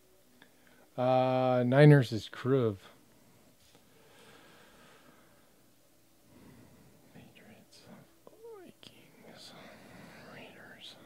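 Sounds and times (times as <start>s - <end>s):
faint whispering: 7.0s - 11.0s.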